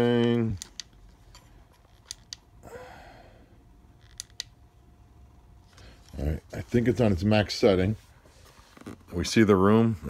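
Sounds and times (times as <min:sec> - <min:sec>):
soft handling rustle: 0:05.6 - 0:09.6.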